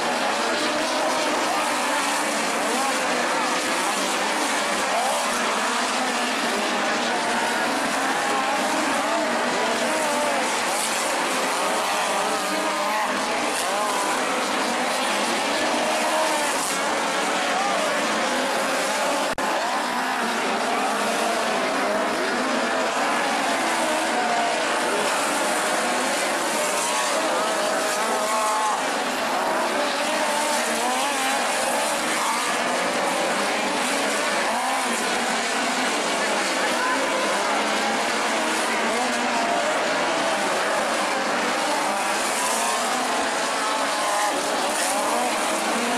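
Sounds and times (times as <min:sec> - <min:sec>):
race car engines revving: 0:00.0 - 0:45.9.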